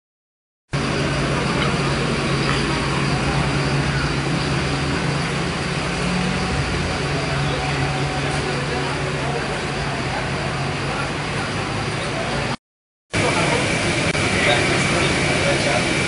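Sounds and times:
bus engine idling: 0.8 - 12.6, 13.2 - 16.0
people talking: 0.8 - 12.6, 13.2 - 16.0.

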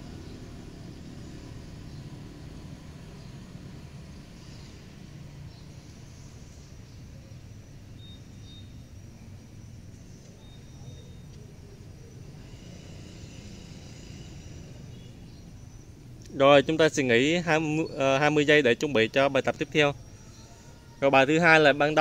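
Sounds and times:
distant street traffic rumble: 0.0 - 22.0
faint high tones: 17.4 - 22.0.

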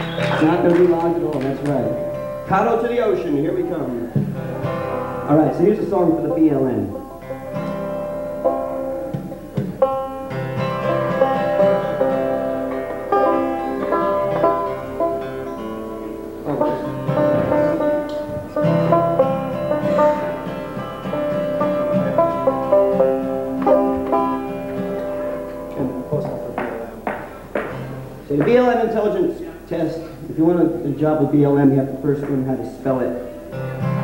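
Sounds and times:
banjo and acoustic guitar playing: 0.0 - 34.0.

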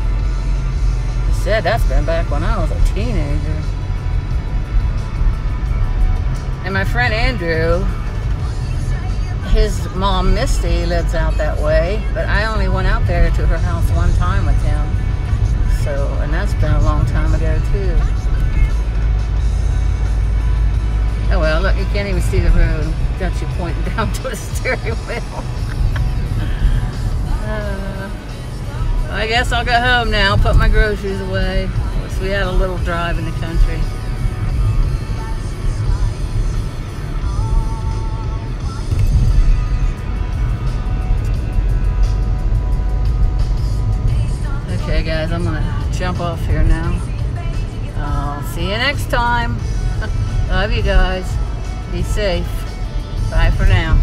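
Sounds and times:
car engine and road rumble: 0.0 - 54.0
guitar music on car radio: 0.0 - 54.0.

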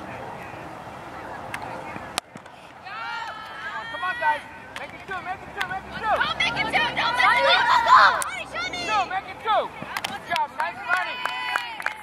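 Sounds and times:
young voices calling out: 5.4 - 11.8.

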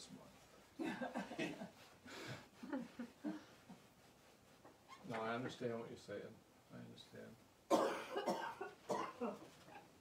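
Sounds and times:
person coughing: 7.7 - 9.4.

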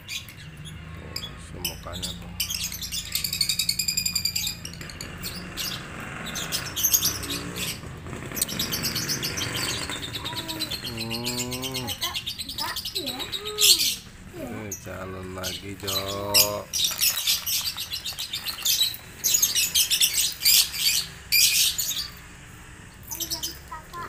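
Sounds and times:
lovebirds chirping: 0.0 - 24.0.

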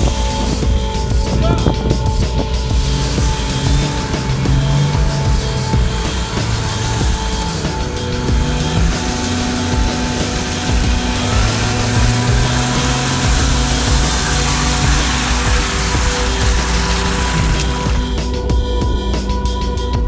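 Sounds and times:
background music: 0.0 - 20.0
car engine: 0.0 - 20.0.

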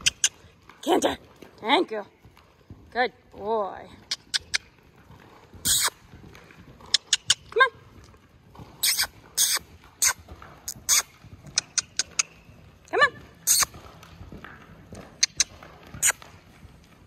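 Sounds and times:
horse hooves cantering on sand: 0.0 - 17.0.

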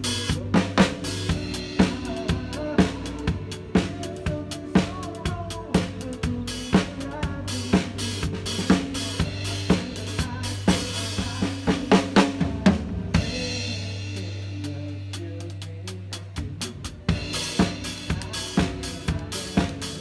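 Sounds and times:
drum kit playing: 0.0 - 20.0.

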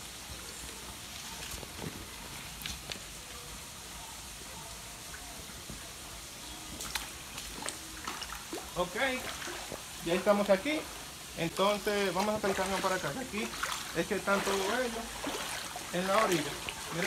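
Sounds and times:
steady hiss: 0.0 - 17.0.

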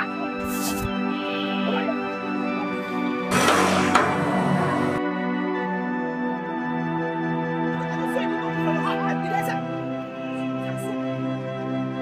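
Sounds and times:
film score sustained tones: 0.9 - 8.2
sharp knock: 3.3 - 5.0.

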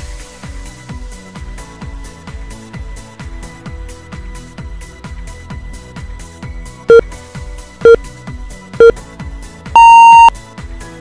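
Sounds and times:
longer higher beep: 9.8 - 10.3
short timer beeps: 9.8 - 10.3.

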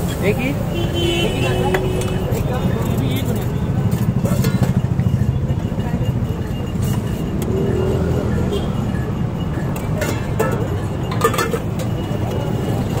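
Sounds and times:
low street rumble: 0.0 - 13.0.

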